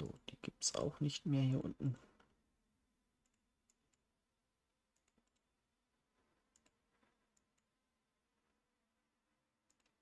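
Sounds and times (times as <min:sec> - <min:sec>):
computer mouse clicks: 0:03.2 - 0:04.1, 0:04.9 - 0:05.5, 0:06.5 - 0:07.8, 0:09.6 - 0:10.0.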